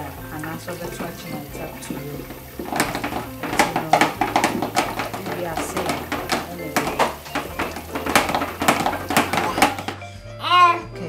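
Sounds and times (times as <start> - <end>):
tap water running into sink: 0.0 - 10.0
yam knocking against sink: 0.0 - 10.0.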